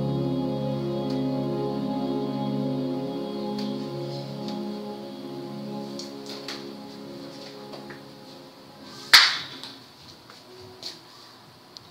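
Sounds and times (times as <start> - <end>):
sharp crack: 9.1 - 9.8.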